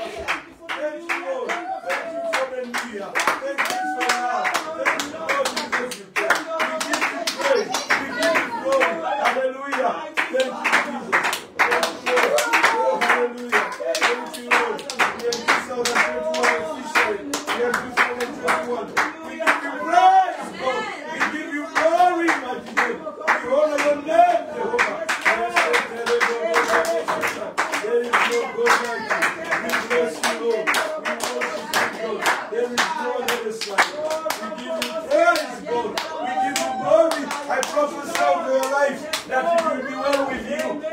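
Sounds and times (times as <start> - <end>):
voices singing: 0.0 - 40.9
hands clapping in time: 0.2 - 9.4, 10.2 - 19.6, 24.8 - 40.8.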